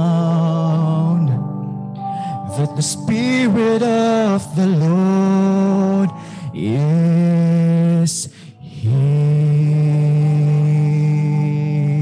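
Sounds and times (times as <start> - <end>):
person breathing: 2.0 - 2.5, 6.1 - 6.6, 8.2 - 8.7.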